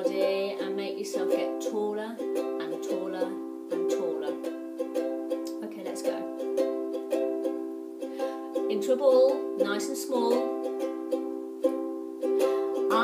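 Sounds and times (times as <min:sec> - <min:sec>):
ukulele strumming: 0:00.0 - 0:13.0.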